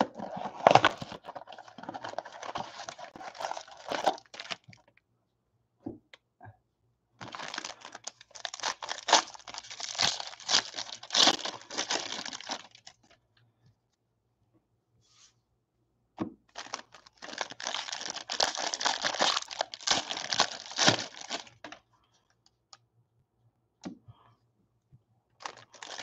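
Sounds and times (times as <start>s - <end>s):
foil wrapping tearing and crumpling: 0.0s - 4.6s, 7.2s - 12.9s, 16.6s - 21.7s, 25.4s - 26.0s.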